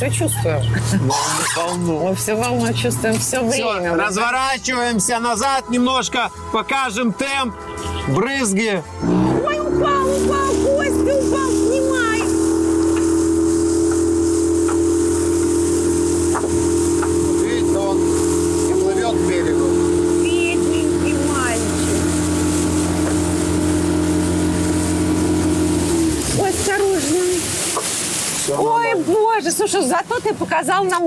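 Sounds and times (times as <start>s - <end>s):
outboard motor running: 0.0s - 31.0s.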